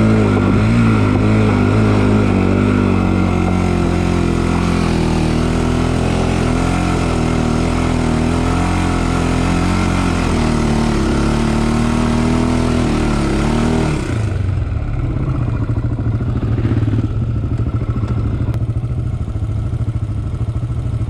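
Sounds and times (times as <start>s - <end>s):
quad bike engine running: 0.0s - 21.0s.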